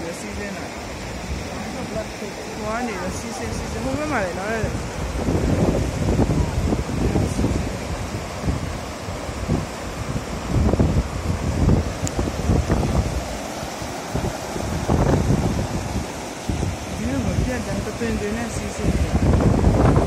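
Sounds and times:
rushing water: 0.0s - 20.0s
wind buffeting microphone: 0.0s - 20.0s.

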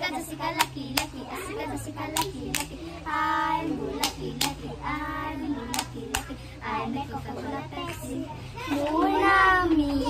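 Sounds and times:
child singing a chant: 0.0s - 10.0s
sharp hand claps: 0.6s - 1.2s, 2.1s - 2.8s, 4.0s - 4.6s, 5.7s - 6.3s.

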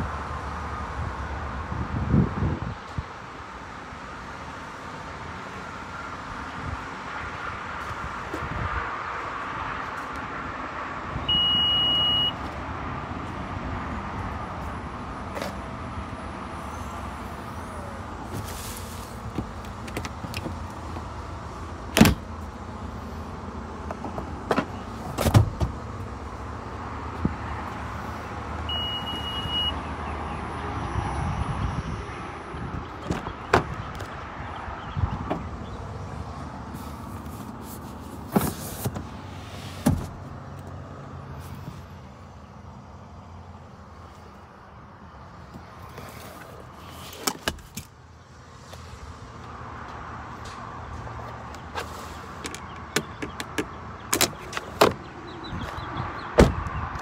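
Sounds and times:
warning beep: 11.2s - 12.4s, 28.7s - 29.8s.

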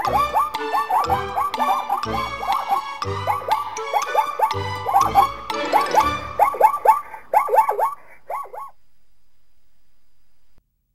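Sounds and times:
animal yelping: 0.0s - 8.8s.

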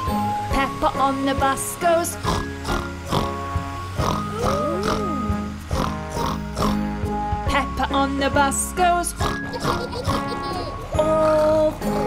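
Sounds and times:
cartoon pig snorting: 2.2s - 3.4s, 4.0s - 6.9s, 9.2s - 12.0s
children's song backing track: 6.9s - 12.0s.

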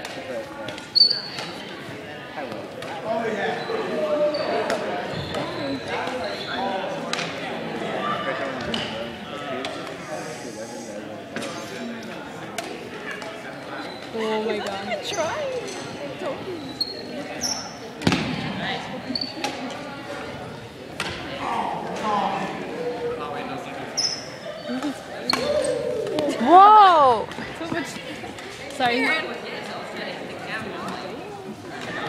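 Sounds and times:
people talking in background: 0.0s - 32.0s
shoe squeak on wooden floor: 1.0s - 1.4s, 4.3s - 6.6s, 16.5s - 17.8s, 24.0s - 24.4s.

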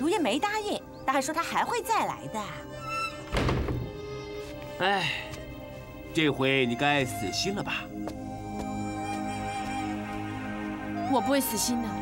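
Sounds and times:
soft background music: 0.0s - 12.0s
dull thud: 3.3s - 4.0s.

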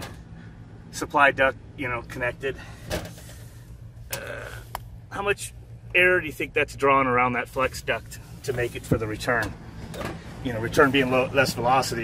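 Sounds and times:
air conditioning unit humming: 0.0s - 12.0s.

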